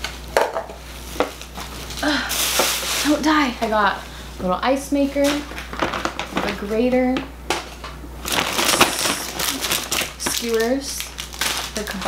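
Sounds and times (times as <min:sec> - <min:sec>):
plastic bag rustling and crinkling: 0:00.9 - 0:03.7, 0:05.1 - 0:07.0, 0:08.2 - 0:12.0.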